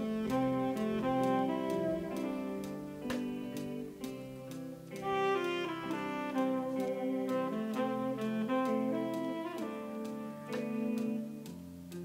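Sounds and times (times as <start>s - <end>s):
brass band chords: 0.0s - 12.0s
light ticking: 0.0s - 12.0s.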